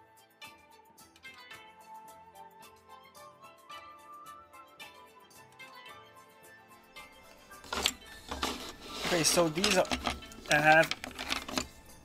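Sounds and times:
plastic toy pieces clacking: 0:07.6 - 0:11.8.

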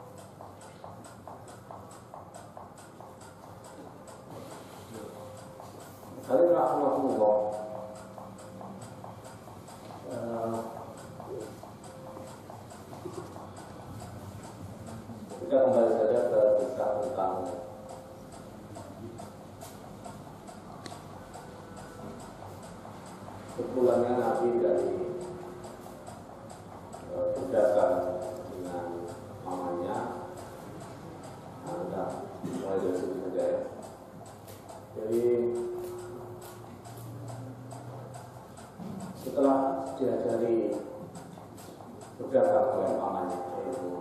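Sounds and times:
faint regular ticking: 0:00.0 - 0:44.0
sharp click: 0:00.0 - 0:44.0
steady low hum: 0:00.0 - 0:44.0.

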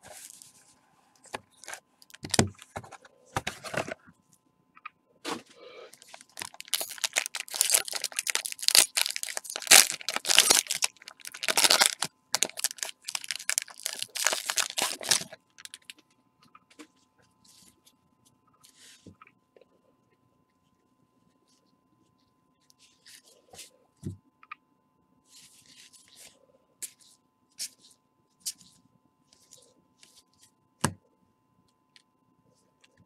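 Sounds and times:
plastic wrapper crinkling: 0:01.4 - 0:02.9, 0:05.9 - 0:16.0.

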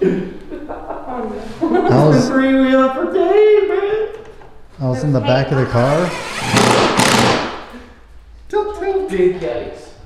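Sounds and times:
man talking: 0:04.8 - 0:06.2
cordless drill driving a screw: 0:06.1 - 0:07.5.

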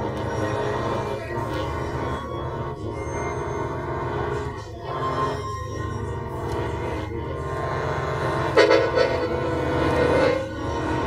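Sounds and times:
pulsing low drone: 0:00.0 - 0:11.0
accordion chords: 0:06.1 - 0:11.0.

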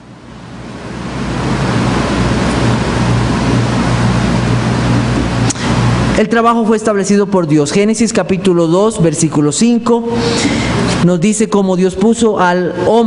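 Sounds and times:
steady rushing noise: 0:00.0 - 0:07.0
low hum: 0:00.0 - 0:11.2.

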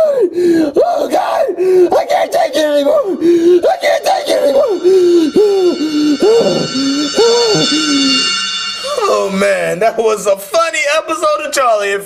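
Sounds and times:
high-pitched ringing tone: 0:03.8 - 0:10.0.

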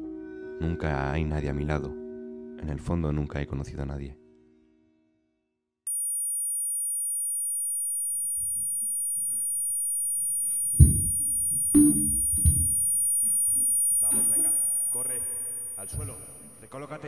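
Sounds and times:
high-pitched sine tone: 0:05.9 - 0:17.0.

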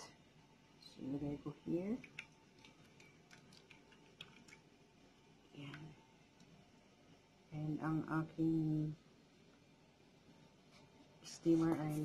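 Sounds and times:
small clicks and ticks: 0:02.0 - 0:04.6.

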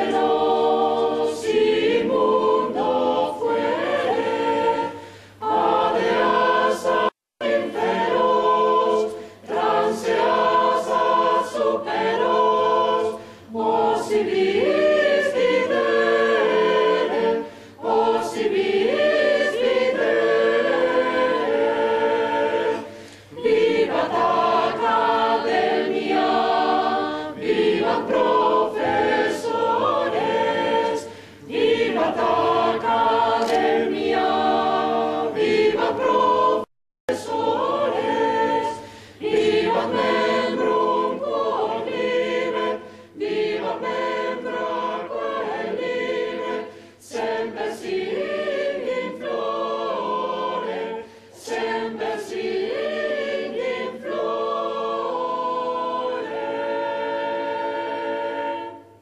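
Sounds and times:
choir singing: 0:00.0 - 0:59.0.

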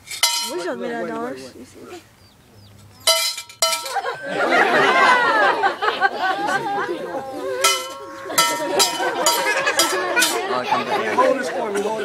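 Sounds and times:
short metallic clinks: 0:00.0 - 0:00.6, 0:03.0 - 0:04.3, 0:07.6 - 0:10.4
chatter of children and adults: 0:00.0 - 0:03.0, 0:04.5 - 0:12.0.

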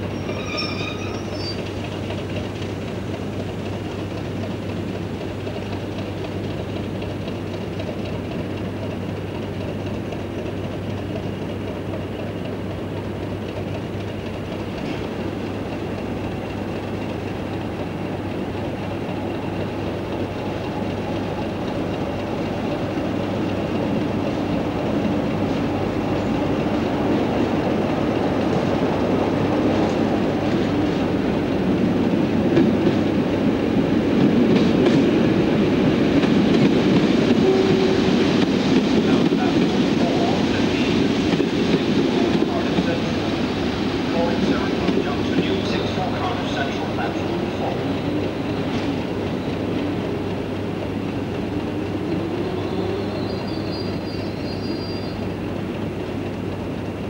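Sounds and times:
train wheels clacking: 0:00.0 - 0:57.0.

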